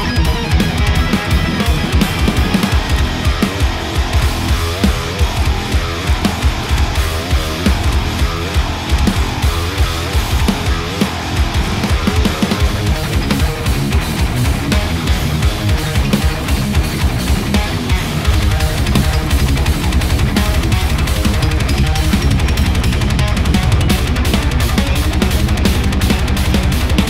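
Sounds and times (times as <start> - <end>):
heavy metal electric guitar riffing: 0.0 - 27.0.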